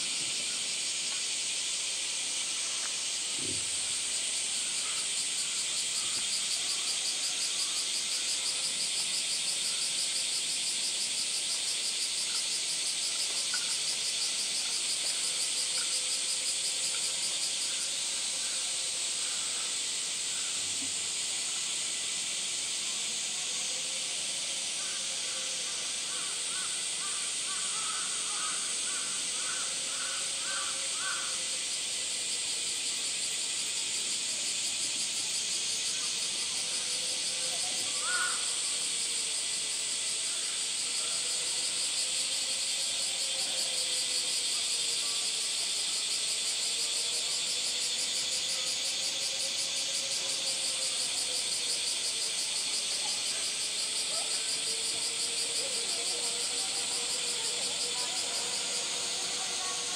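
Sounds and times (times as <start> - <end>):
cicada chorus drone: 0.0 - 59.9.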